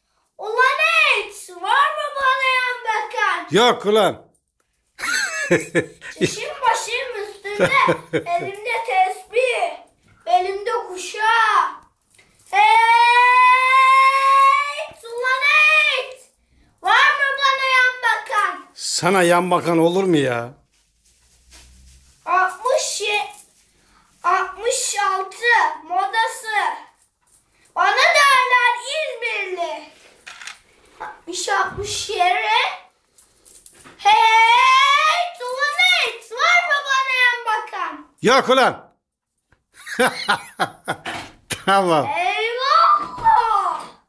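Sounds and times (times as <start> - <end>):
boy shouting: 0.4 - 4.1, 5.5 - 11.8, 12.6 - 19.2, 27.8 - 29.9, 34.0 - 38.8, 41.6 - 44.0.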